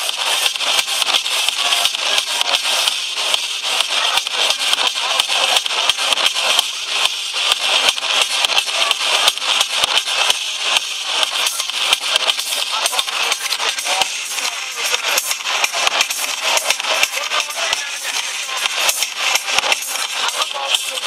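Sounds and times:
distorted dance music: 0.0 - 21.0.

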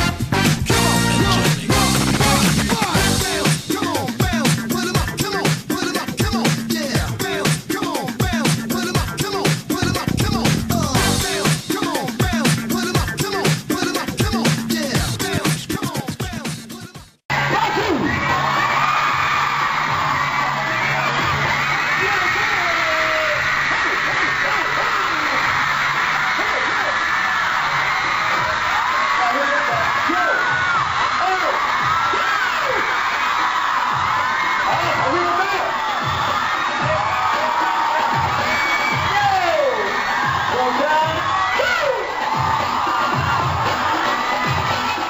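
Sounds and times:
loud music from speakers: 0.0 - 45.0
crowd cheering and screaming: 17.3 - 45.0.

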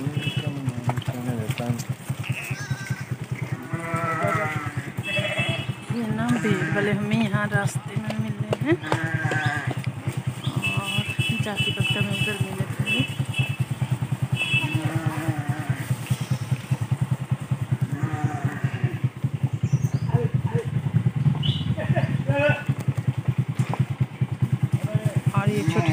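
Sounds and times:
motorcycle engine puttering: 0.0 - 25.9
sheep and goats bleating: 1.7 - 7.4, 8.7 - 16.3, 17.8 - 19.3, 21.8 - 22.7, 25.4 - 25.9.

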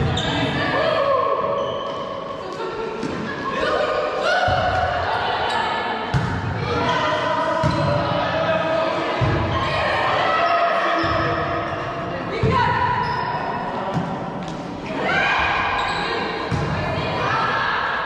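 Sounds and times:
players shouting in a hall: 0.0 - 13.8, 14.8 - 18.0.

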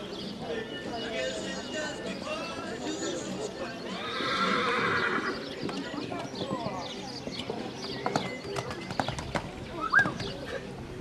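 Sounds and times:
horse whinnying: 3.0 - 5.4
horse hoofbeats cantering: 5.4 - 10.4.

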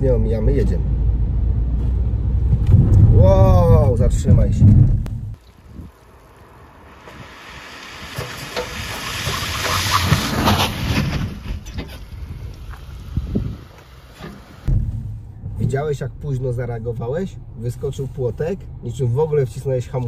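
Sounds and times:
wind on microphone: 2.4 - 6.0, 8.8 - 13.8
tyres hissing on wet road: 5.4 - 14.7.

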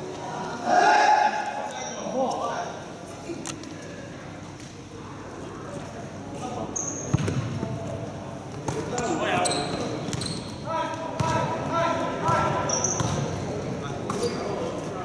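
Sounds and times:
basketball bouncing on gym floor: 7.1 - 7.6, 11.2 - 11.5, 12.3 - 13.3.

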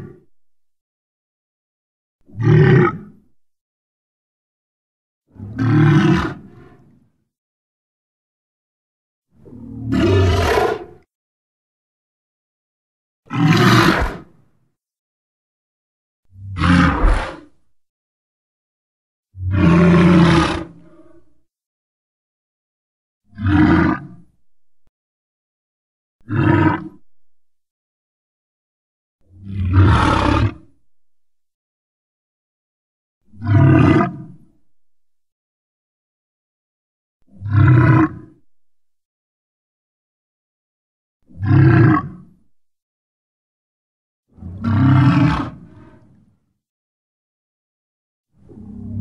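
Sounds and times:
dinosaur roar: 2.4 - 3.1, 5.4 - 6.9, 9.5 - 11.0, 13.3 - 14.3, 16.5 - 17.6, 19.4 - 21.3, 23.4 - 24.2, 26.3 - 27.0, 29.4 - 30.7, 33.4 - 34.2, 41.4 - 42.2, 44.5 - 46.2.

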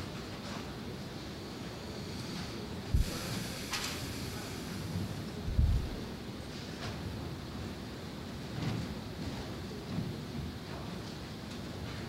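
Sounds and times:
hiss: 1.4 - 6.0.

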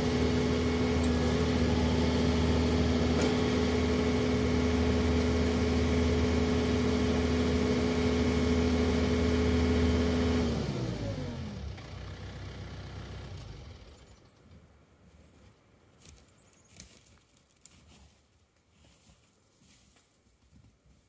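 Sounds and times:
tractor diesel engine running: 0.0 - 14.4.

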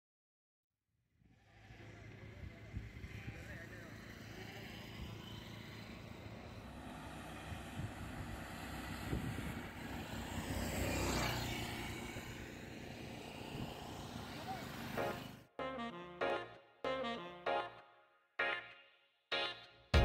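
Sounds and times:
car passing by: 1.2 - 15.5.

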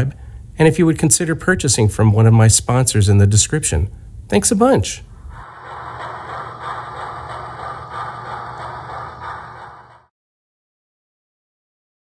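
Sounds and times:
model train whirring and rattling: 5.4 - 10.1.

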